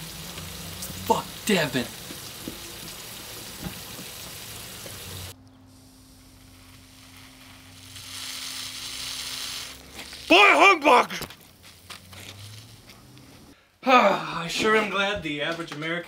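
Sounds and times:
sprinkler water spray hiss: 0.0s - 10.8s
low hum: 5.1s - 8.0s.

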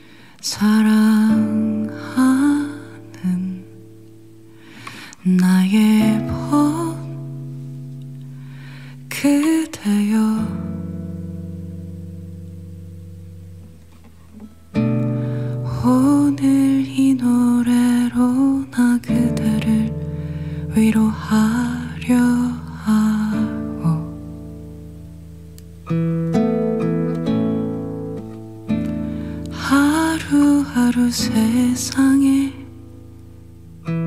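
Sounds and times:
woman singing: 0.4s - 3.9s, 5.2s - 7.5s, 9.0s - 11.2s, 15.6s - 24.4s, 29.4s - 32.8s
classical guitar chords: 0.7s - 34.0s.

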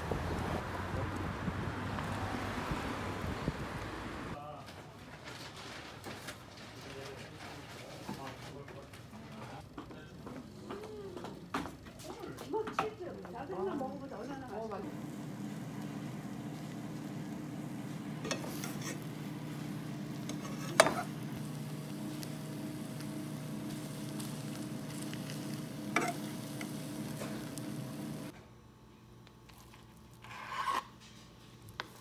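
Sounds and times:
steady low hum: 13.7s - 29.5s
faint sizzling in frying pan: 14.8s - 28.3s.

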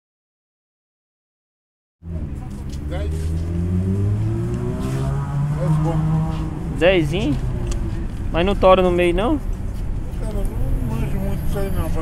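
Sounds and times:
vehicle engine speeding up: 2.0s - 12.0s.

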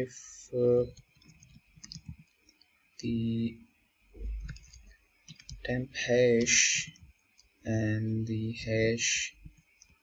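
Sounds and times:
computer keyboard keystrokes: 0.9s - 2.4s, 4.2s - 5.6s.

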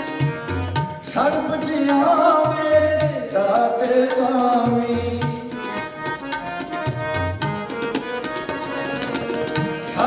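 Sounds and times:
harmonium melody: 0.0s - 10.0s
tabla strokes: 0.0s - 10.0s.

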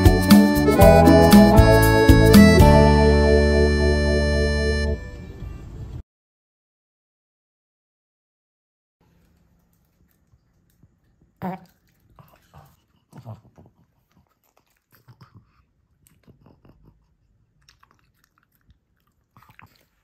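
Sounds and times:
dog chewing fruit: 9.1s - 20.0s.

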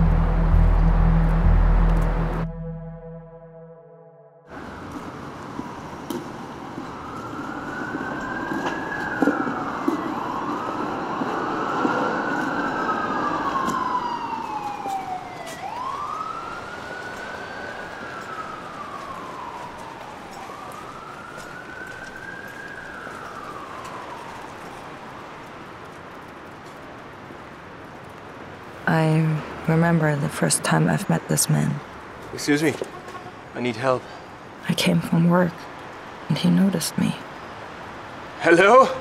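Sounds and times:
city traffic noise: 0.0s - 2.5s, 4.5s - 39.0s
emergency siren wailing: 0.0s - 25.7s.

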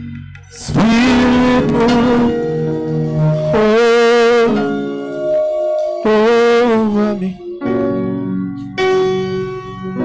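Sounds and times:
bell-like keyboard chords: 0.0s - 10.0s.

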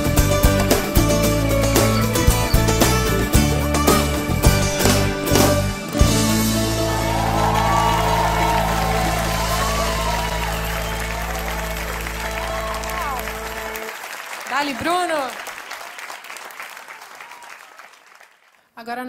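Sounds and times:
acoustic band playing: 0.0s - 14.0s
audience applause: 6.4s - 18.6s
person cheering: 6.6s - 15.3s.

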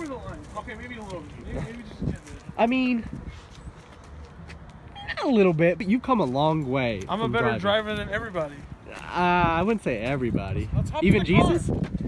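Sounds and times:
footsteps on asphalt: 0.0s - 10.8s, 11.5s - 12.0s.

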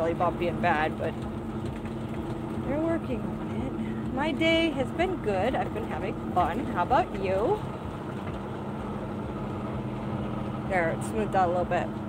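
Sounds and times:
road noise on gravel: 0.0s - 12.0s
truck engine running: 0.0s - 12.0s.

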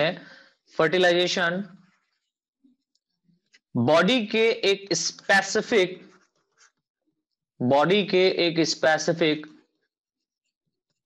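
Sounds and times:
man speaking: 3.7s - 6.2s.

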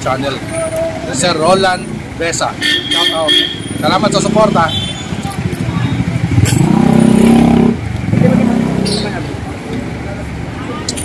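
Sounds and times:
street voices: 0.0s - 11.0s
vehicle engine passing by: 3.8s - 10.2s.

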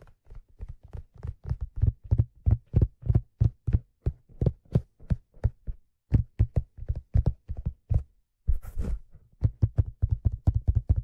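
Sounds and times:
fingertips tapping on a hat: 0.0s - 8.7s, 9.3s - 11.0s.

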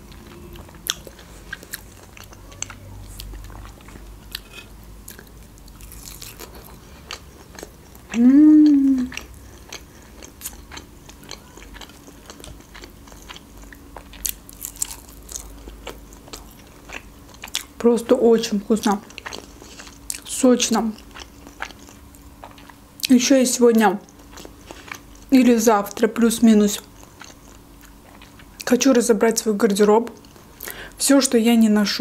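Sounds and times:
chewing mouth sounds: 0.1s - 17.7s
person humming mmm: 8.1s - 9.3s.

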